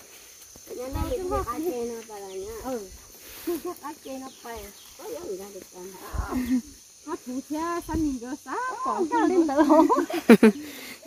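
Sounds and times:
people talking: 0:00.7 - 0:10.4.

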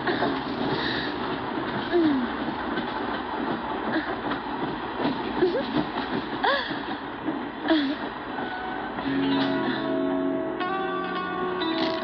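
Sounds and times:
moving train running: 0:00.0 - 0:12.0.

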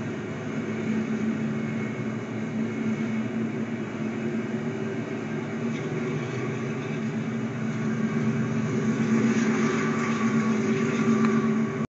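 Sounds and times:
train passing with low drone: 0:00.0 - 0:11.9.

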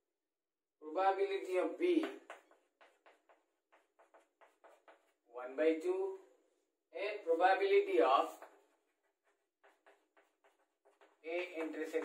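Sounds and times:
chalk scratching on chalkboard: 0:02.0 - 0:05.3, 0:08.2 - 0:12.0.

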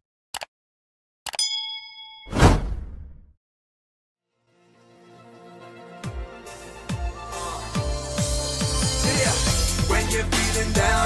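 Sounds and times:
bell ding: 0:01.4 - 0:02.3
whoosh: 0:02.3 - 0:03.3.

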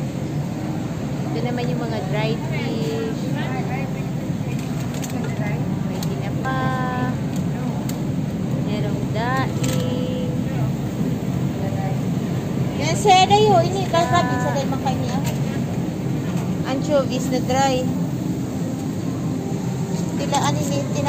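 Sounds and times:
refrigerator low hum: 0:00.0 - 0:21.0
shoppers' voices: 0:00.1 - 0:21.0.

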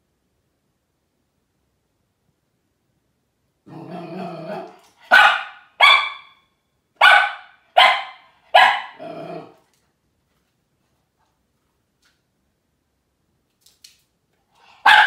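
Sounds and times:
dog growling: 0:03.7 - 0:04.9, 0:09.0 - 0:09.6
small dog barking: 0:03.7 - 0:06.4, 0:07.0 - 0:09.5, 0:14.8 - 0:15.0.

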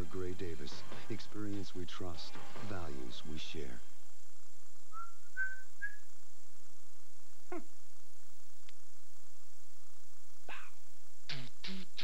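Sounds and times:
person whistling rising notes: 0:04.9 - 0:06.0.

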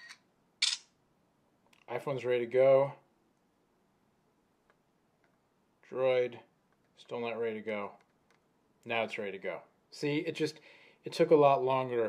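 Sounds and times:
phone camera shutter clicks: 0:00.0 - 0:00.9.

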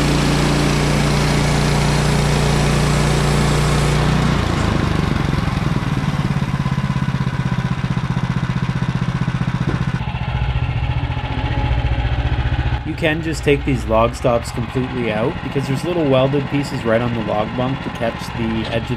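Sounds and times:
small gasoline engine running: 0:00.0 - 0:18.9.

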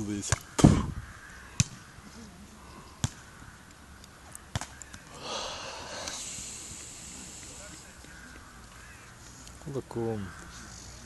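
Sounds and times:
volleyball hand slaps: 0:03.0 - 0:03.2, 0:04.5 - 0:05.0.

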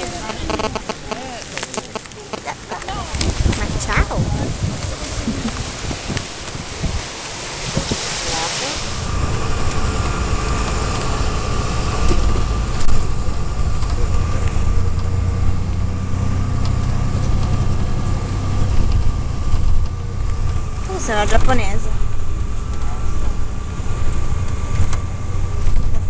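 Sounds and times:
car road rumble: 0:00.0 - 0:26.0
faint steady whine: 0:00.0 - 0:26.0.

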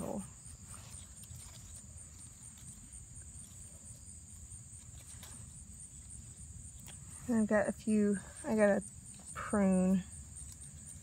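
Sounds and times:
insects trilling: 0:00.0 - 0:11.0
leaves rustling: 0:00.0 - 0:11.0.

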